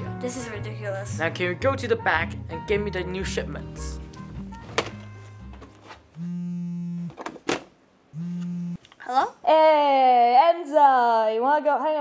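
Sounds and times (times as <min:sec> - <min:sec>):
background music: 0:00.0 - 0:06.4
phone ringing buzz tones: 0:06.2 - 0:07.2, 0:08.1 - 0:08.8.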